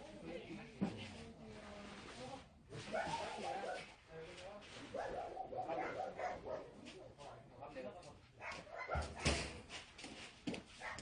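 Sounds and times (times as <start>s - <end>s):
dogs barking and yelping: 4.9s - 6.8s, 8.4s - 9.4s, 10.8s - 11.0s.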